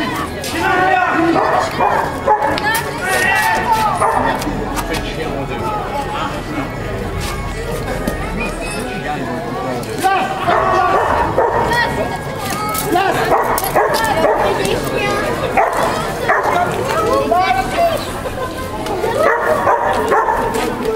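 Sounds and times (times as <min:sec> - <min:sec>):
crowd chatter: 0:00.0 - 0:20.9.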